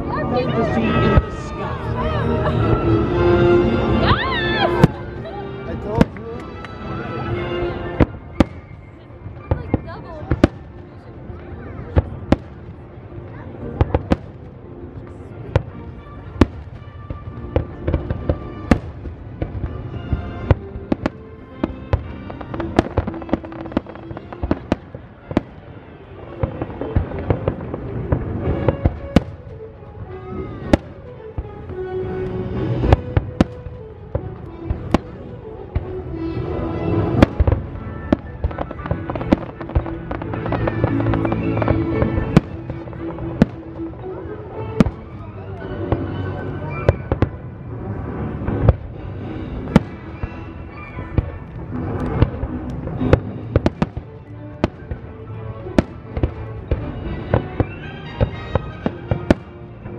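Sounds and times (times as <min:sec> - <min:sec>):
music: 0:00.0 - 0:59.9
fireworks bursting: 0:07.7 - 0:12.8, 0:13.7 - 0:59.9.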